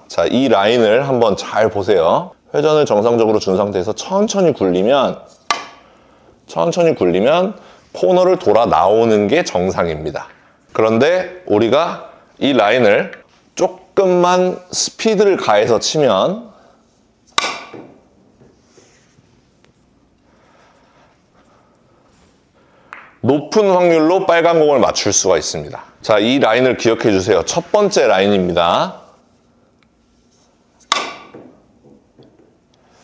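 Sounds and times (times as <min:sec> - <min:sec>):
cue striking billiard ball: 0:17.3 - 0:18.5, 0:30.8 - 0:32.5.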